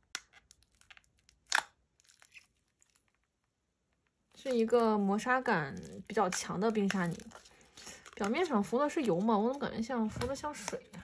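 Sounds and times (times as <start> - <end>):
slime crackling and popping: 0.0 - 4.6, 5.3 - 9.1.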